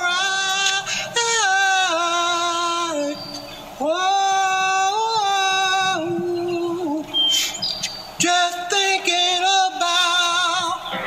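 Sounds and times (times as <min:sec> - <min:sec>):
unaccompanied gospel singing: 0:00.0 - 0:11.0
high bird chirps: 0:03.1 - 0:03.7, 0:06.3 - 0:08.2.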